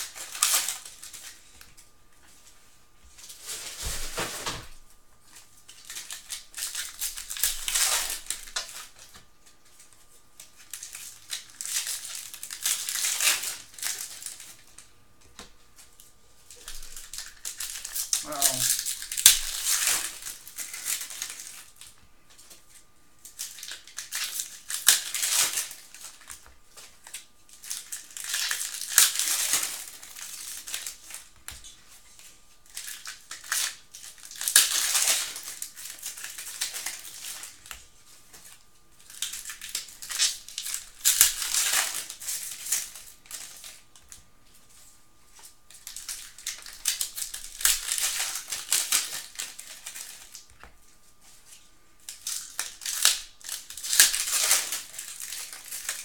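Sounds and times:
card packs crinkling and rustling: 0.0s - 56.0s.

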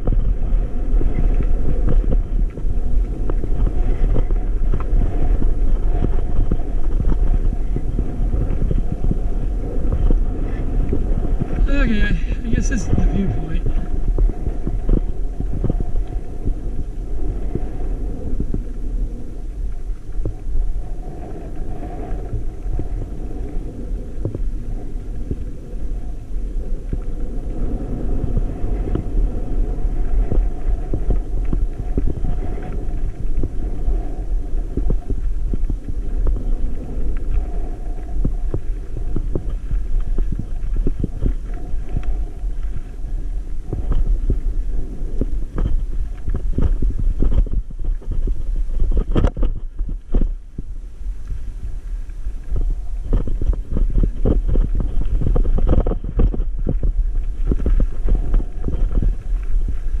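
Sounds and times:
wind rumble on microphone: 0.0s - 60.0s.

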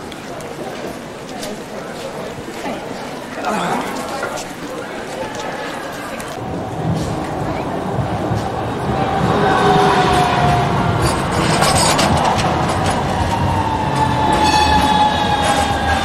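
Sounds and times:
tram wheels rumbling on rails: 6.3s - 16.0s
wheel squeal: 14.0s - 16.0s.

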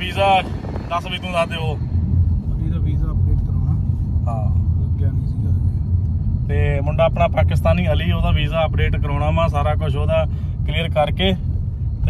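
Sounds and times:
car driving rumble from inside: 0.0s - 12.0s.

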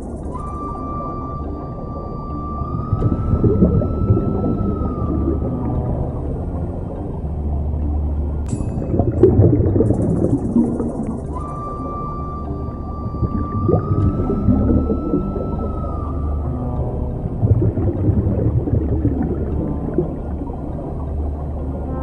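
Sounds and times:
underwater low rumble: 0.0s - 22.0s
gurgling exhaled bubbles: 2.5s - 22.0s.

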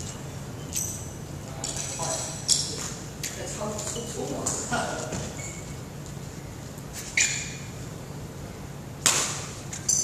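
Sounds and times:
racket hitting shuttlecock: 9.0s - 9.7s.

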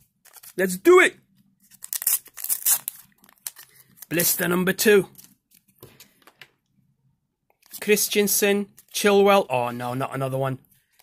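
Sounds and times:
blister pack tearing and crinkling: 0.2s - 0.7s, 1.6s - 4.4s.

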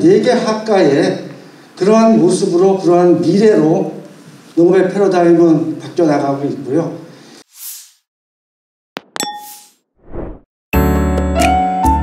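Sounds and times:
short rush of noise: 7.4s - 8.1s, 9.4s - 10.5s
bright chime ding: 9.0s - 9.8s.

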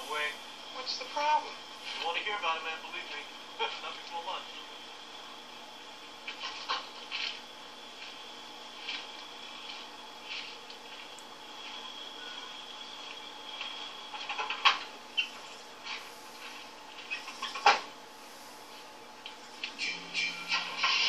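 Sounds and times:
steady high hum: 0.0s - 21.0s.

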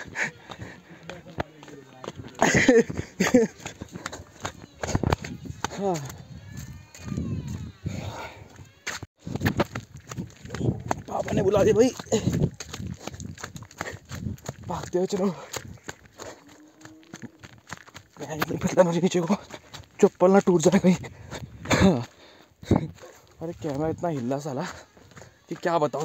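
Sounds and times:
sandal footsteps on rocky path: 0.0s - 26.0s.

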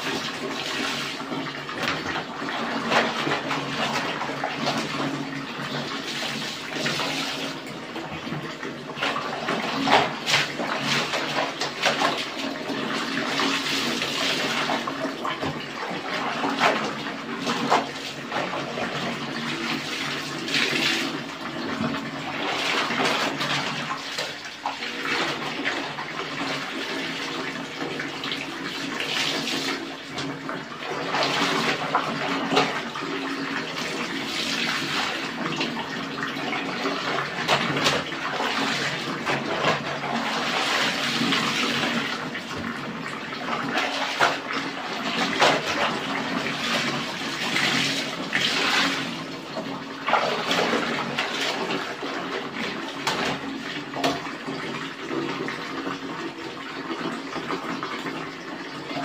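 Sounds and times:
water sloshing and splashing in basin: 0.0s - 59.0s.

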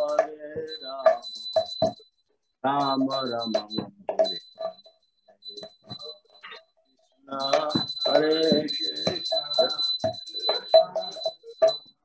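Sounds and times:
high-pitched ringing tone: 0.0s - 12.0s
person chanting or speaking: 2.7s - 4.3s, 7.3s - 11.3s.

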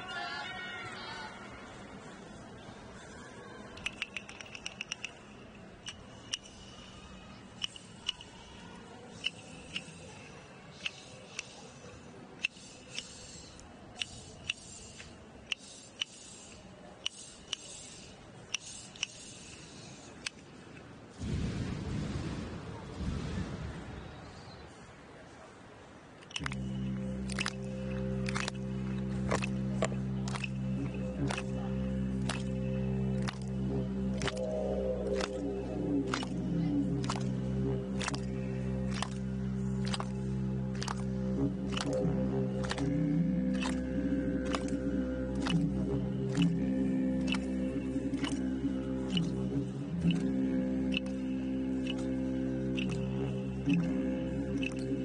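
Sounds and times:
faint stadium background noise: 0.0s - 55.0s
sharp clicks: 3.8s - 6.8s, 26.2s - 55.0s
didgeridoo drone: 3.8s - 16.5s, 26.3s - 55.0s
sharp short clicks: 26.2s - 33.5s, 50.0s - 55.0s.

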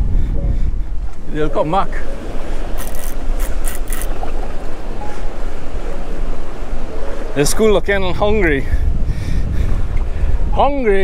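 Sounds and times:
choppy sea water: 0.0s - 11.0s
wind on microphone: 0.0s - 11.0s
high hissing bursts: 2.8s - 4.2s.

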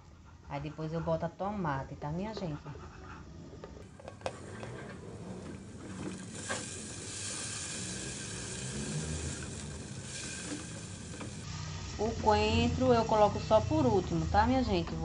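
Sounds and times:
onion sizzling in hot oil: 6.1s - 12.6s.

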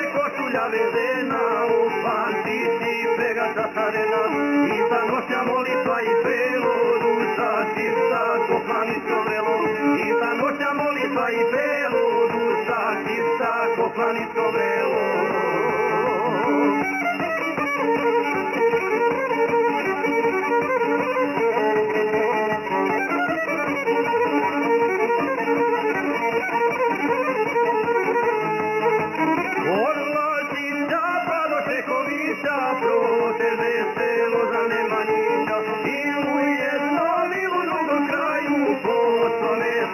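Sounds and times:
plucked long-necked lute: 0.0s - 39.9s
rhythmic accompaniment: 0.0s - 39.9s
violin playing melody: 0.0s - 39.9s.

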